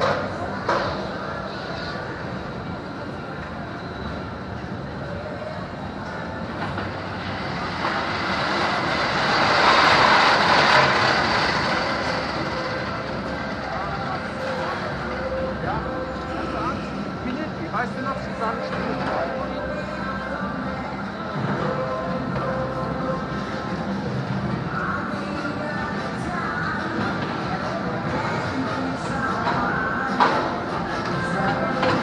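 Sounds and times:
people's voices: 0.0 - 32.0
roller coaster rumbling on track: 0.0 - 32.0.

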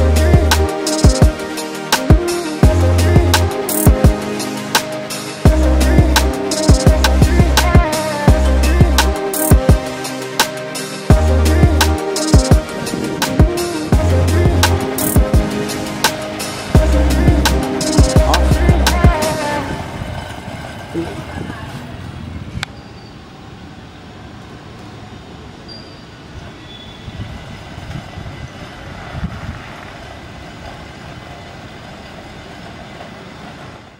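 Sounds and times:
background music with a beat: 0.0 - 19.6
steady rushing noise: 0.0 - 22.7.

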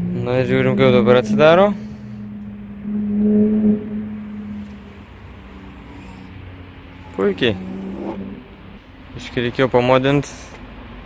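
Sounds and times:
steady low hum: 0.0 - 9.2.

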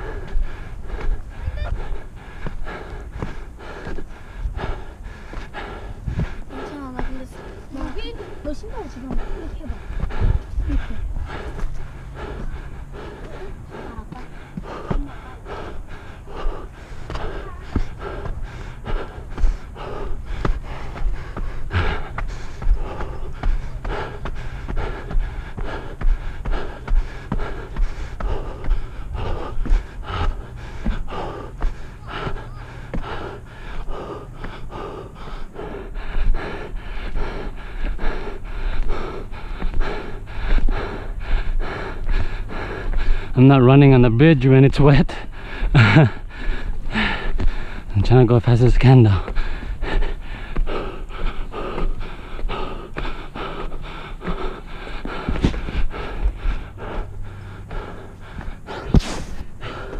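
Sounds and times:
person panting: 0.0 - 59.9.

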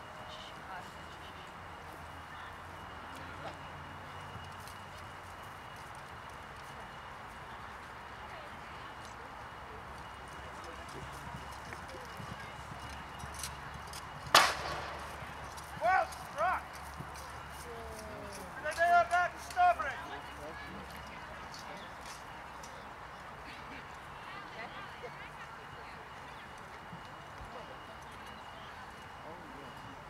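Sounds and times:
faint hoofbeats: 0.2 - 30.0
sharp crack: 14.3 - 15.2.

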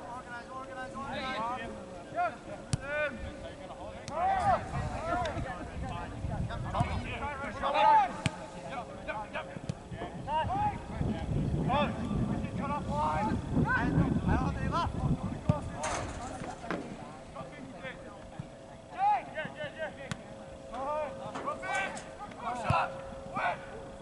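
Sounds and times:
wind rumble: 10.4 - 15.8
distant players shouting: 18.8 - 24.0.

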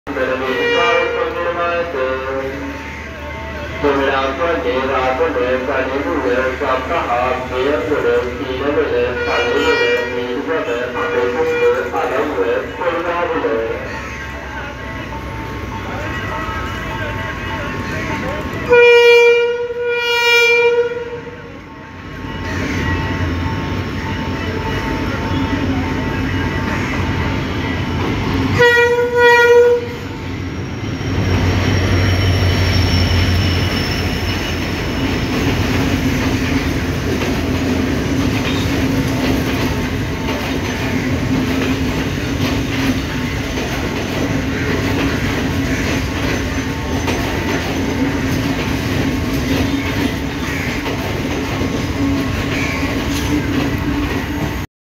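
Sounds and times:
train horn blast: 0.2 - 1.8, 9.0 - 12.0, 18.6 - 21.7, 28.5 - 30.2
train wheels clattering on rails: 31.1 - 54.6.

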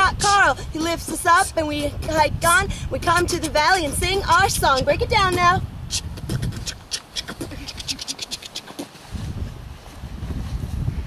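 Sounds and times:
beatboxing mouth clicks: 0.2 - 2.6, 3.2 - 8.9.

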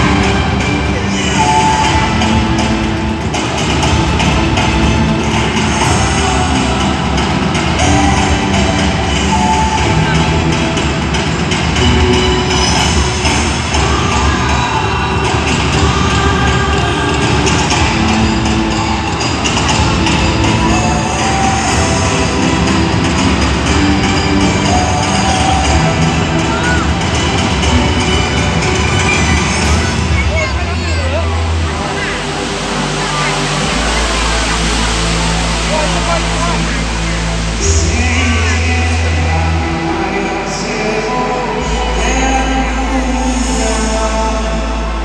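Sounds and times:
loud music over sound system: 0.0 - 45.0.

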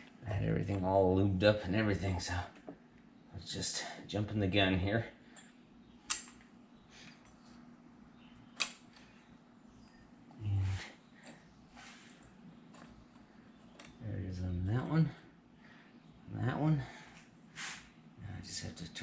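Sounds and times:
faint steady hum: 0.0 - 19.0
sharp metal clicks: 5.4 - 6.5, 8.6 - 9.1.

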